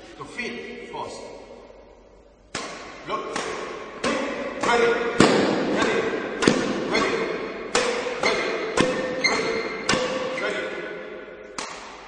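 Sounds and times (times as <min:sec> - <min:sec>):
racket striking shuttlecock: 0:02.5 - 0:10.4, 0:11.4 - 0:12.0.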